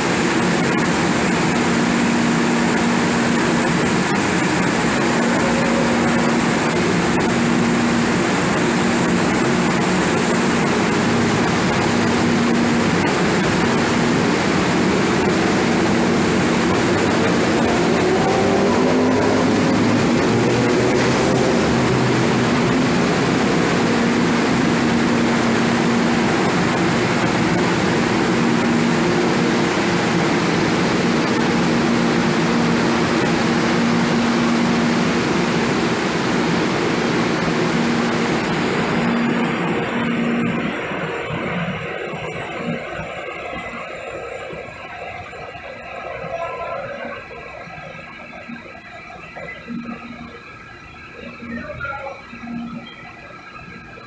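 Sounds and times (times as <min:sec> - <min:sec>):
train rumble and hiss: 0:00.0 - 0:54.0.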